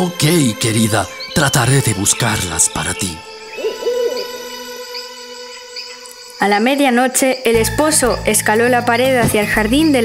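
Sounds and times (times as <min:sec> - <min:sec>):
owl hooting: 0:03.4 - 0:06.1.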